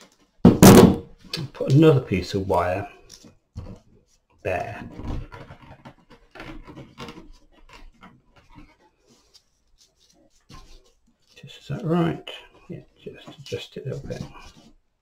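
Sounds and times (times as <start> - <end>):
wire twisting around stems: 3.0 - 14.9.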